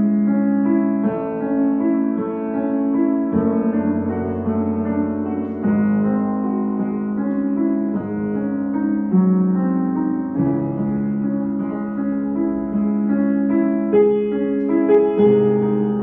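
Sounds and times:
upright piano slow chords: 0.0 - 16.0.

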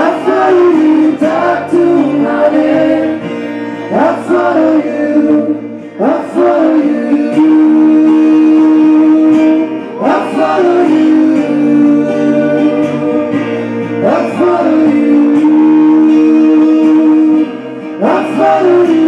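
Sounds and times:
men singing: 0.0 - 19.0
strummed acoustic guitars: 0.0 - 19.0.

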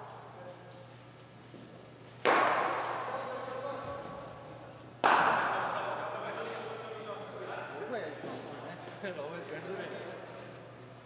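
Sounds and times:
cricket bat striking ball: 2.2 - 3.1, 5.0 - 5.6.

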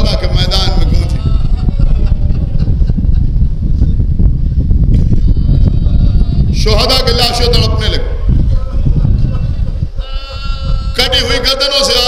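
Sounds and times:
low rumble of gathering: 0.0 - 12.0
wavering human wail: 8.7 - 11.4.

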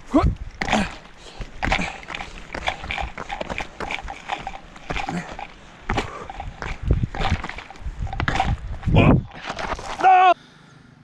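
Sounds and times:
hard breathing: 0.6 - 8.5
footsteps crunching on gravel: 0.6 - 10.1.

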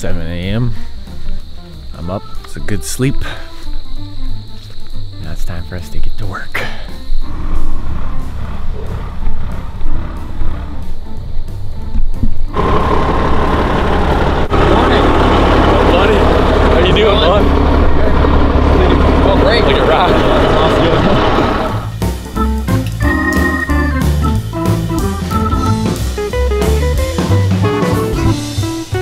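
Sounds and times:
diesel engine idling: 6.9 - 22.6
music with pulsing beat: 21.8 - 29.0.

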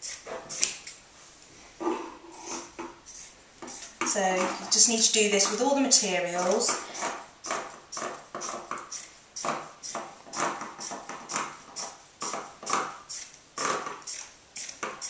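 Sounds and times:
scissors snipping through fabric: 6.4 - 9.1.

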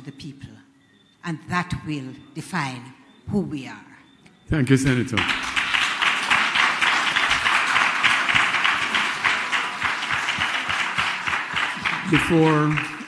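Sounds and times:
audience applauding: 5.1 - 13.0.

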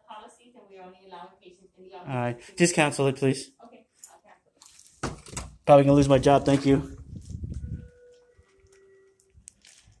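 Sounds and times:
faint steady tones: 7.5 - 10.0.

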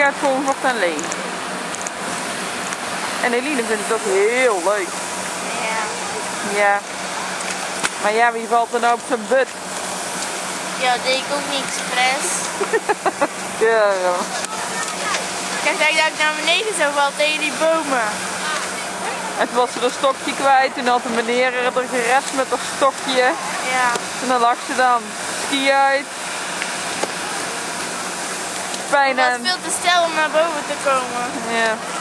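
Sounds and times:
girl speaking: 5.5 - 6.3, 10.8 - 12.5, 14.3 - 19.4, 23.4 - 24.0, 29.0 - 31.4.

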